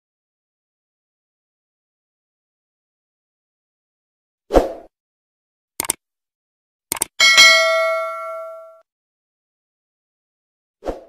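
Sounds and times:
click: 0:05.8 - 0:06.0, 0:06.9 - 0:07.1
notification bell ding: 0:07.2 - 0:08.8.

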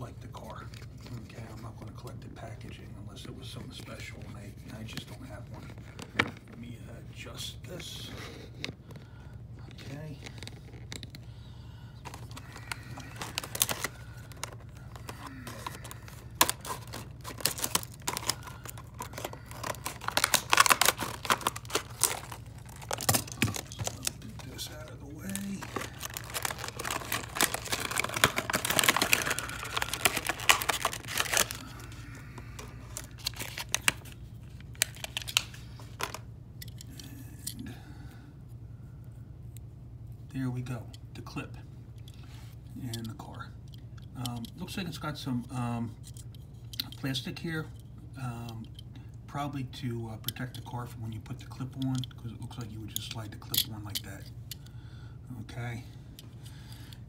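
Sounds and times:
plastic crinkling and tearing: 0:12.0 - 0:36.2
scissors cutting plastic: 0:13.0 - 0:24.2, 0:25.6 - 0:31.6.

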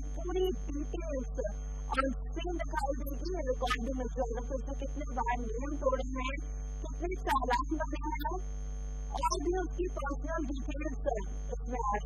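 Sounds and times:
woman narrating: 0:00.0 - 0:08.4, 0:09.2 - 0:12.0
low electrical hum: 0:00.0 - 0:12.0.

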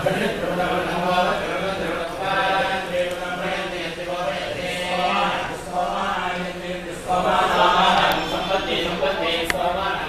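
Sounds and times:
voices chanting a mantra: 0:00.0 - 0:10.0.

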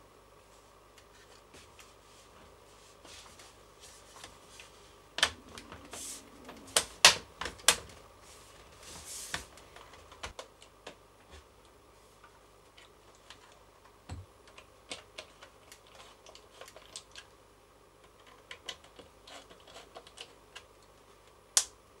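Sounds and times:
small parts clicking and tapping: 0:18.0 - 0:21.0.

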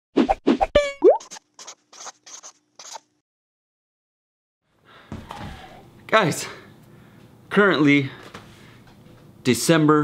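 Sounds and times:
pen scratching on paper: 0:01.6 - 0:03.0.

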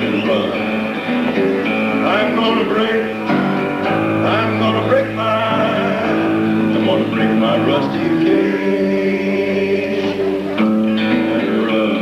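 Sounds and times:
guitar: 0:00.0 - 0:12.0
live band music: 0:00.0 - 0:12.0.

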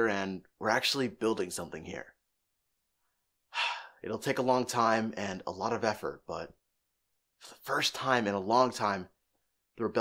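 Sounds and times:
man breathing: 0:03.0 - 0:04.0.

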